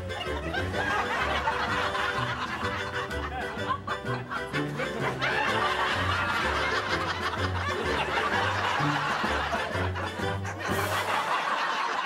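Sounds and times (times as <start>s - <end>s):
upbeat music with bass line: 0.0s - 11.7s
people laughing: 0.0s - 12.0s.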